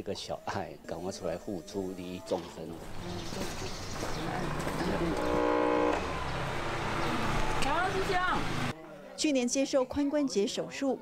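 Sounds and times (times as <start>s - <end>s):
engine rumble of street traffic: 2.7s - 8.8s
vehicle horn: 5.0s - 6.3s.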